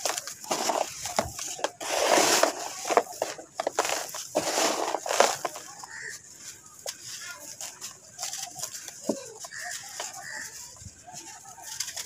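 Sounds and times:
sand trickling into tub: 0.0s - 6.2s
sand crumbling in hands: 0.0s - 12.0s.

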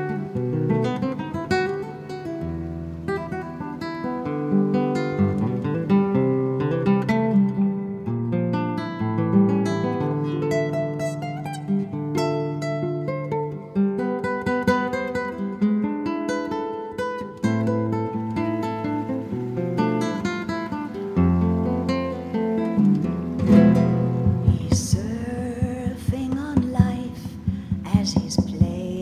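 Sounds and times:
acoustic guitar fingerpicking: 0.0s - 29.0s
wavering sliding guitar tones: 0.0s - 29.0s.

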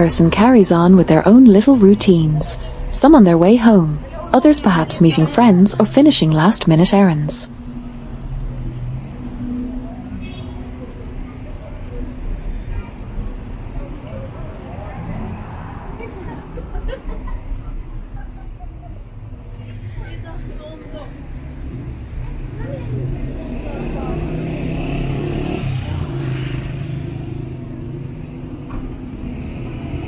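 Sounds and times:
passers-by talking faintly: 0.0s - 28.2s
road traffic rumble: 0.0s - 30.0s.

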